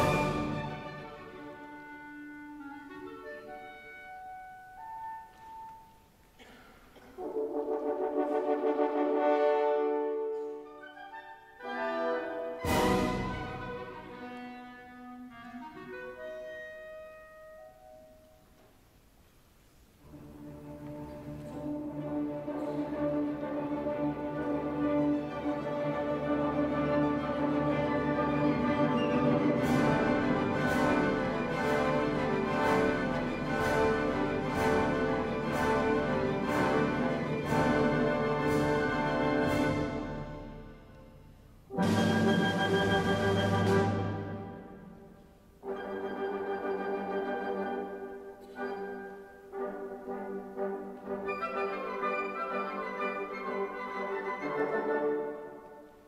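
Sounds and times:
symphony orchestra playing: 0.0 - 18.6, 19.8 - 56.0.

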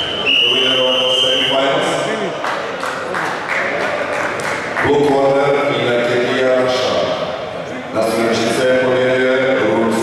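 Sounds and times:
hall background noise: 0.0 - 10.0
man's voice with drawn-out tones: 4.8 - 10.0.

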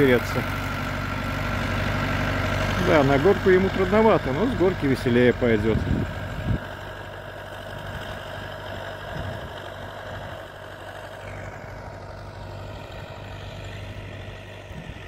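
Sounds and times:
tractor diesel engine under load: 0.0 - 15.0.

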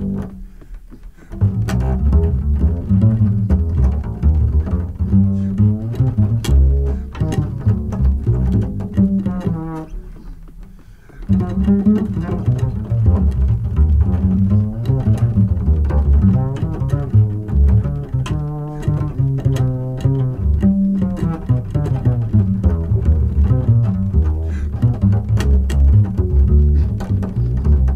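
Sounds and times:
plucked double bass: 0.0 - 27.9
jazz piano trio music: 1.4 - 27.9.

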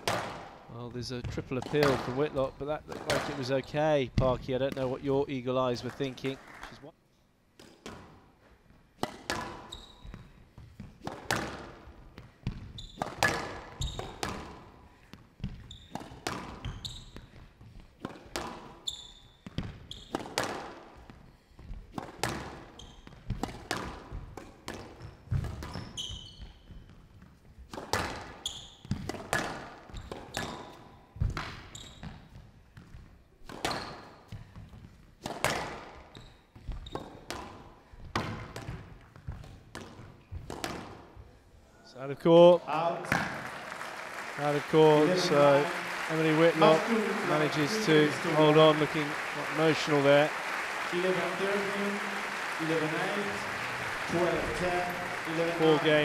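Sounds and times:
squash ball cracking off rackets: 9.0 - 9.7, 12.4 - 14.6, 33.4 - 34.0
shoes squeaking on court floor: 9.4 - 11.1, 12.2 - 18.0, 18.6 - 20.4, 21.0 - 23.4, 24.7 - 27.5, 28.3 - 29.1, 29.8 - 35.0, 35.9 - 37.5.

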